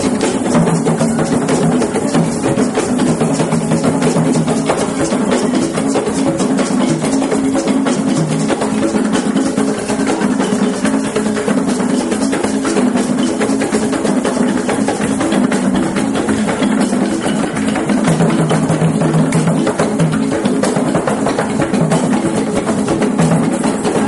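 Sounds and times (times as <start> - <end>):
hand drums playing fast rhythm: 0.0 - 24.0.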